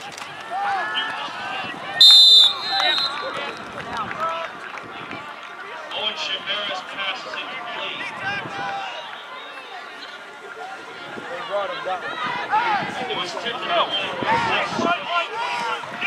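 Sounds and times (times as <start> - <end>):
crowd shouting and talking: 0.0 - 16.0
referee's whistle: 2.0 - 3.4.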